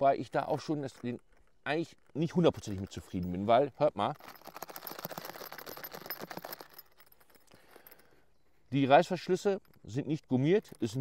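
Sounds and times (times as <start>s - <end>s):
zipper pulls rattling on case: 0.5s - 8.0s.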